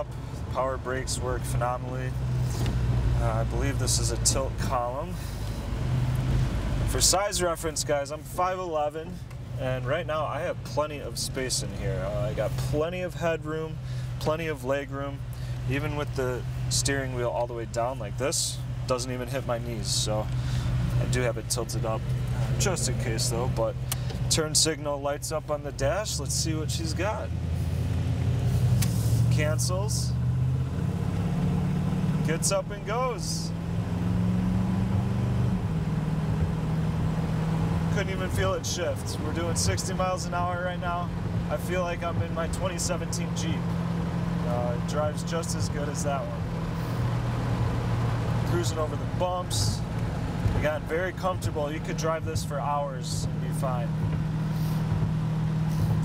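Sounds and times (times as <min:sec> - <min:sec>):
car engine accelerating: 0:00.0 - 0:56.0
road noise: 0:00.0 - 0:56.0.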